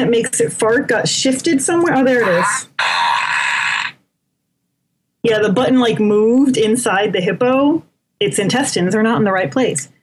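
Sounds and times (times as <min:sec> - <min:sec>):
toy fart noise: 0:02.2 - 0:04.0.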